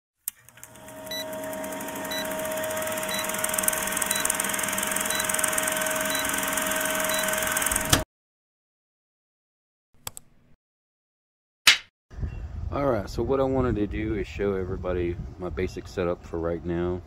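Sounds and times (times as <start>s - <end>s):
film projector whir: 0.3s - 8.0s.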